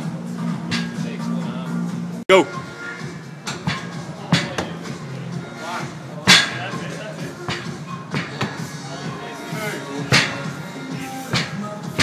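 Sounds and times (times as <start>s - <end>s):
background music: 0.0s - 12.0s
voices: 3.7s - 12.0s.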